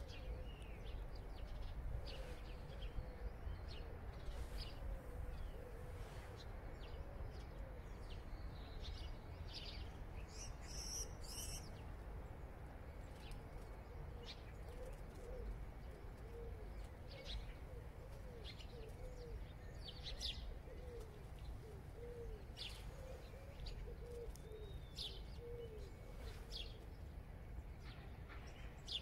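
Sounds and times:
small birds chirping: 0.0s - 12.0s, 13.1s - 29.0s
pigeon cooing: 20.7s - 24.6s.

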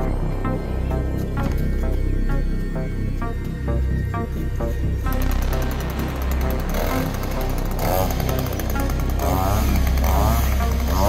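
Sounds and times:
background music: 0.0s - 11.0s
chainsaw engine revving: 5.1s - 11.0s.

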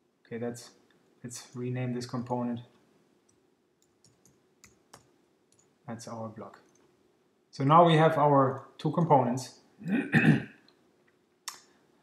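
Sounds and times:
computer keyboard keys clicking: 3.8s - 5.7s.

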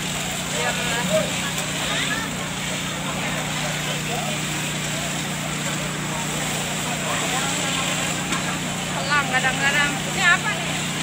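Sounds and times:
crowd voices: 0.0s - 11.0s
pump motor running: 0.0s - 11.0s.

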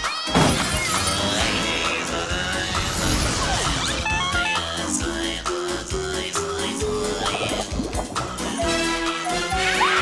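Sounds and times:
upbeat cartoon theme music: 0.0s - 10.0s.

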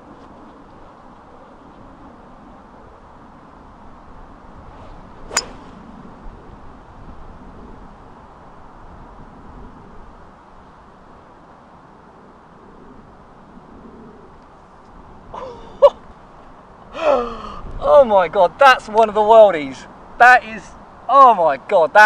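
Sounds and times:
golf club striking ball: 5.3s - 5.8s.

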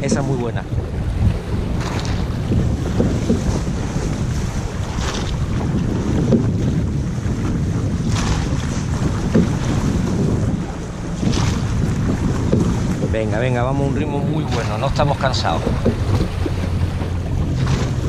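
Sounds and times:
oars swishing: 0.0s - 18.0s
water rushing along hull: 0.0s - 18.0s
wind buffeting microphone: 0.0s - 18.0s.

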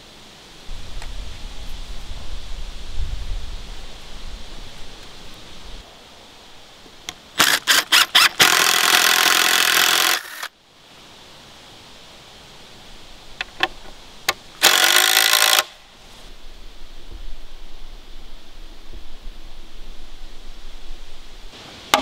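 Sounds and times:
wind rumble on microphone: 0.6s - 5.8s, 16.0s - 21.6s
cordless drill driving into wood: 7.4s - 10.5s, 14.6s - 15.7s.

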